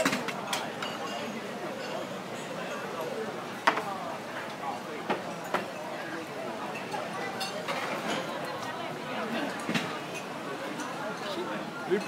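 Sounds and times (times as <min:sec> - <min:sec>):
dishes and glasses clinking: 0:00.0 - 0:02.5
diners chattering: 0:00.0 - 0:12.0.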